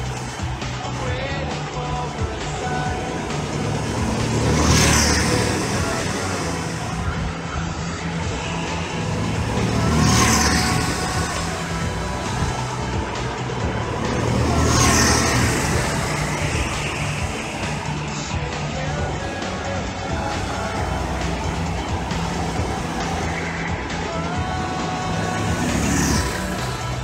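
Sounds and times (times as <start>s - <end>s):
go-kart engines running: 0.0s - 27.0s
kart passing close: 0.0s - 27.0s.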